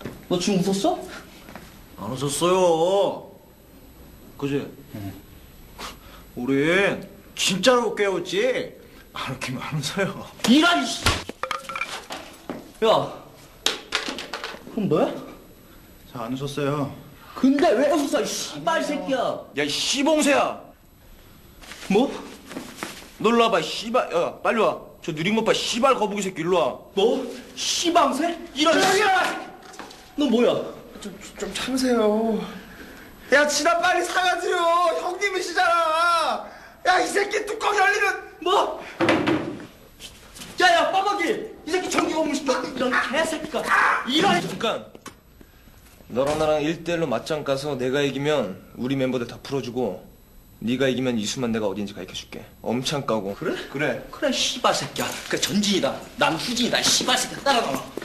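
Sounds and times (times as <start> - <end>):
glass clinking: 11.4 - 12.0
man shouting: 28.6 - 29.6, 42.8 - 44.6.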